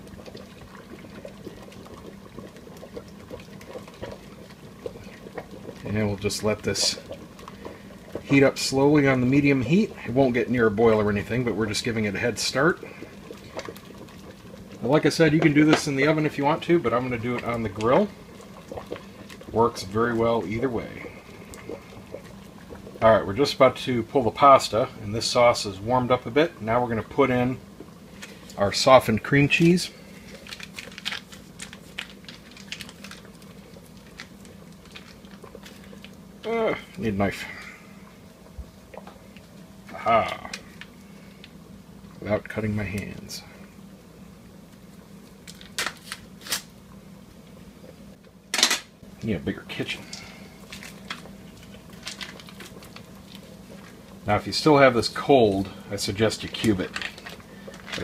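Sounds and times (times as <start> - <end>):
water boiling in a pot: 0.0 - 58.0
foil wrapper crinkling: 29.6 - 36.2, 45.4 - 46.7, 50.6 - 54.0, 56.4 - 58.0.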